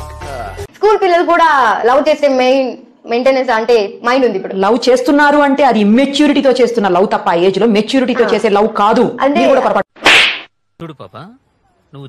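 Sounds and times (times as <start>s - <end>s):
whip crack sound effect: 10.0s - 10.5s.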